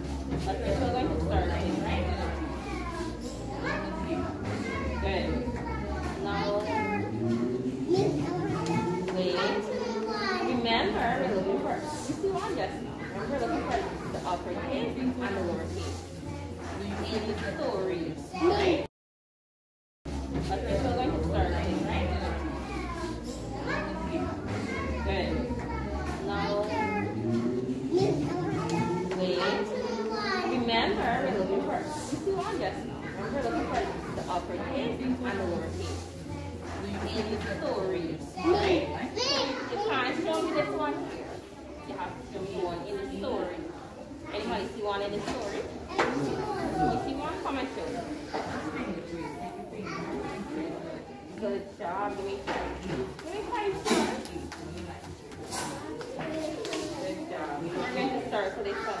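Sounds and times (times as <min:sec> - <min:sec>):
young children chattering: 0:00.0 - 0:18.9, 0:20.1 - 0:59.0.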